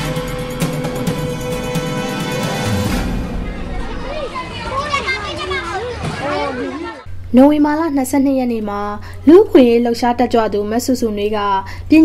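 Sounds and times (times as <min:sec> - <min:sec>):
low rumble: 0:02.8 - 0:05.6
children talking and calling: 0:03.2 - 0:07.1.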